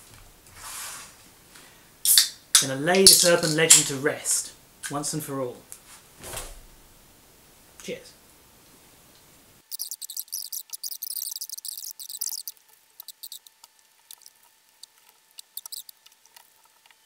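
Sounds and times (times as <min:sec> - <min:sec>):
popping candy crackling: 0:09.7 - 0:17.0.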